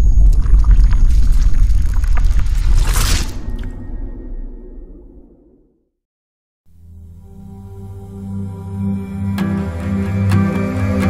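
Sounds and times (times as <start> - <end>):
crackles: 0.0 - 5.1
deep rumble: 0.0 - 5.8
whoosh: 0.0 - 5.8.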